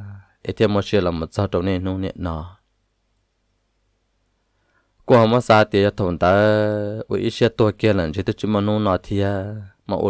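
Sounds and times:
person narrating: 0.0 - 2.6, 5.0 - 10.0
faint high click: 3.1 - 3.4.

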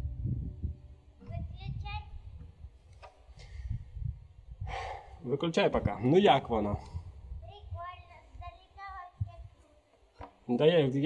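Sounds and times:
wind buffeting microphone: 0.0 - 9.6.

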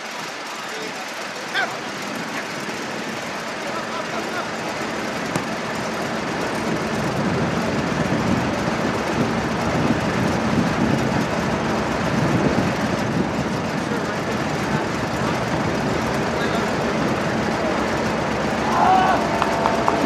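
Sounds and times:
outdoor background rumble: 0.0 - 20.0.

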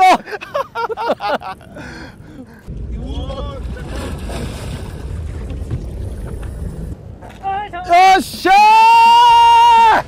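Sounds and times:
sea and boat noise: 0.0 - 10.0
wind rumbling on microphone: 1.4 - 9.6.

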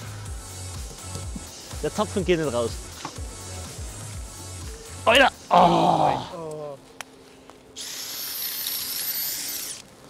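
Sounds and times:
cordless drill boring into ice: 7.8 - 9.9.

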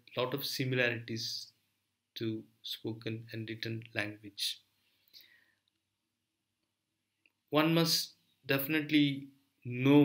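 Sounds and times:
faint short breath: 4.8 - 5.7.

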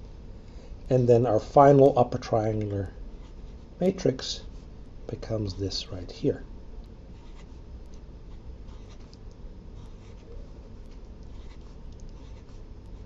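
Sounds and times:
low room hum: 0.0 - 13.0
pen scratching on paper: 7.2 - 7.6, 8.3 - 9.2, 9.8 - 13.0.

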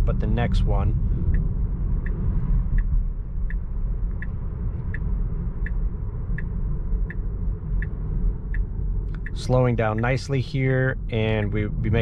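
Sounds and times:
road and tyre noise: 0.0 - 12.0
turn signal ticking: 0.0 - 12.0.

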